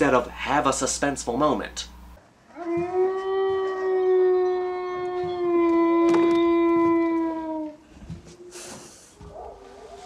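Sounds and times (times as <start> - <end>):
dog howling: 2.5 - 7.8.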